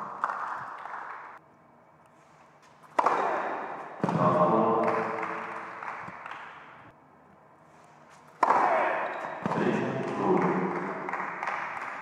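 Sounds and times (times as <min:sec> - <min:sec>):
tennis ball bouncing on hard court: 0:02.8 - 0:06.6, 0:08.2 - 0:12.0.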